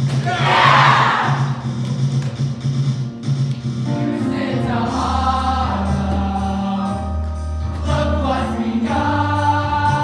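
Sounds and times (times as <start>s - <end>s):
musical theatre accompaniment: 0.0s - 10.0s.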